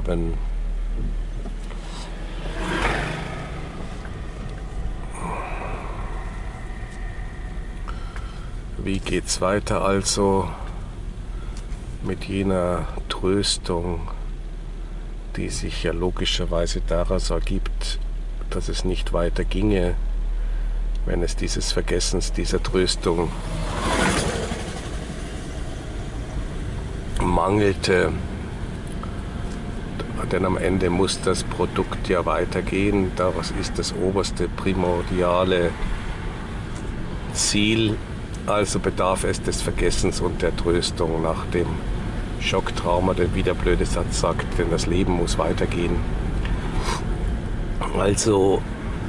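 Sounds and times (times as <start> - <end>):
car engine hum: 0.0 - 49.0
motor scooter passing: 1.9 - 8.4, 23.3 - 27.0.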